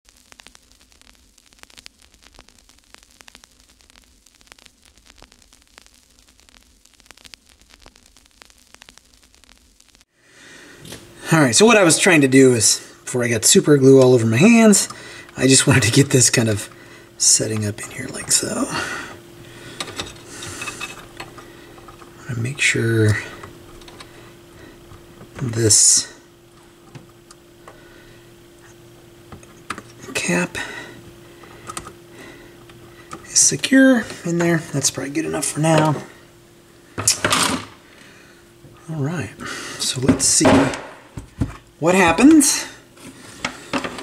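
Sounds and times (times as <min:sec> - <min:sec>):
crackling static: 0:00.0 - 0:44.0
low steady hum: 0:10.2 - 0:44.0.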